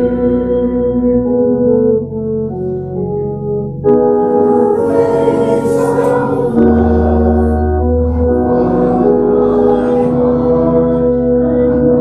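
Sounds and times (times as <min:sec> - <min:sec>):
congregation singing: 0:00.0 - 0:01.3, 0:03.9 - 0:12.0
hymn chords with bass notes: 0:00.0 - 0:12.0.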